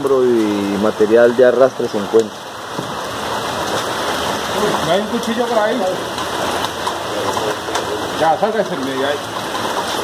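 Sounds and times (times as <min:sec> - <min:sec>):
stream water rushing over rocks: 0:00.0 - 0:10.0
people talking indistinctly: 0:04.4 - 0:09.3.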